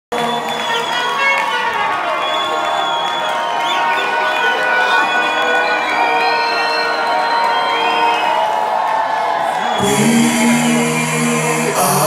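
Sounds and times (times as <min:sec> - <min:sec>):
crowd cheering and whooping: 0:00.1 - 0:10.6.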